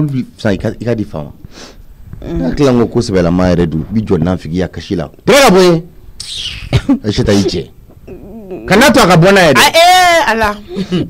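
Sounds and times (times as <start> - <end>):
person breathy hiss: 1.5 - 1.8.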